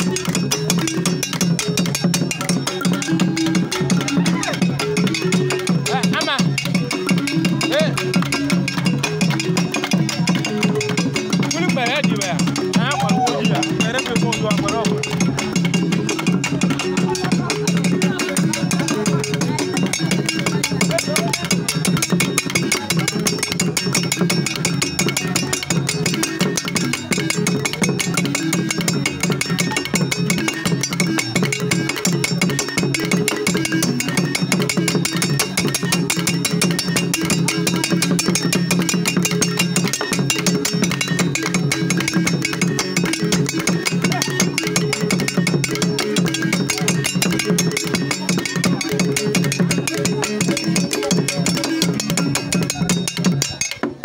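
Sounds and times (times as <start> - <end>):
drumming: 0.0 - 54.0
xylophone played with mallets: 0.0 - 54.0.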